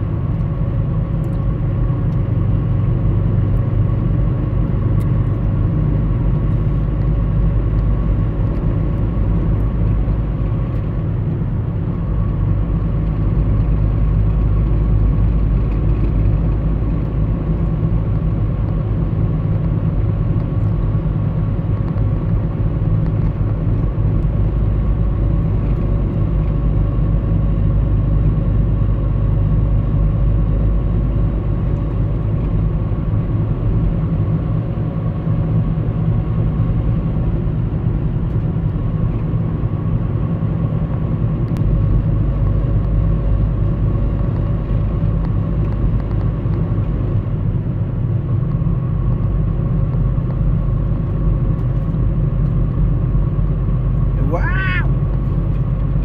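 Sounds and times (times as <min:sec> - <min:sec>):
vehicle driving rumble: 0:00.0 - 0:56.0.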